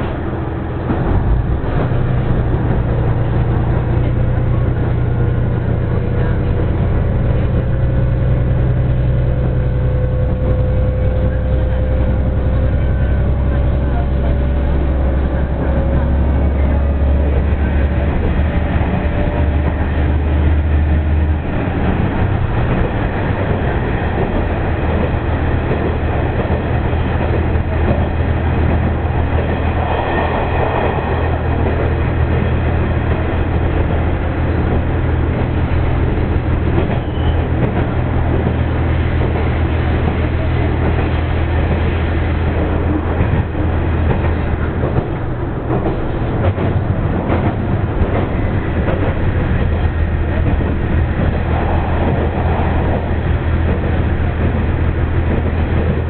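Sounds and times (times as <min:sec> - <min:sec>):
diesel engine drone: 0:00.0 - 0:56.0
wheel and rail noise: 0:00.0 - 0:56.0.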